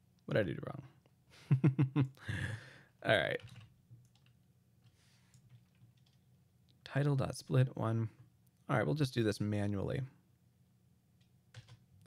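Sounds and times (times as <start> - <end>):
low steady hum: 0.0 - 12.0
man speaking: 3.0 - 3.5, 6.8 - 10.2.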